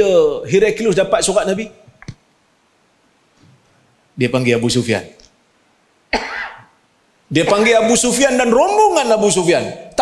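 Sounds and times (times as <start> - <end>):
man coughing: 6.1 - 6.7.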